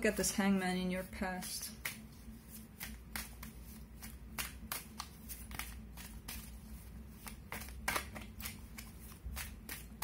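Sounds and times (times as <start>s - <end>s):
cards shuffled by hand: 1.4s - 10.0s.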